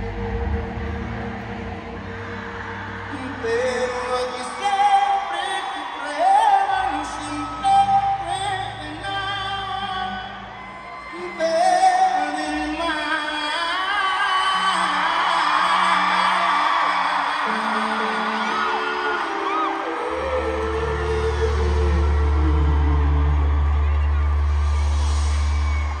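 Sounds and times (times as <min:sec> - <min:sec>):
deep bass note: 0:00.0 - 0:04.0
crowd cheering and whooping: 0:00.0 - 0:26.0
live band holding chords: 0:00.0 - 0:26.0.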